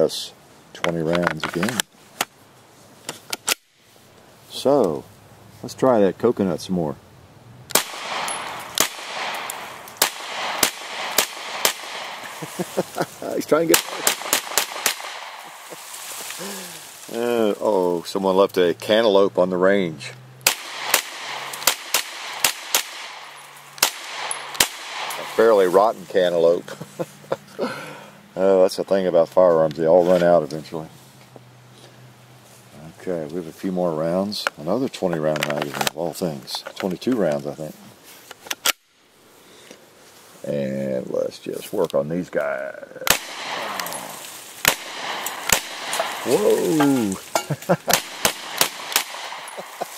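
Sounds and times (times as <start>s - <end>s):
carbine gunshots: 7.7s - 12.9s, 13.5s - 15.8s, 20.4s - 25.6s, 43.1s - 46.8s, 47.9s - 49.9s.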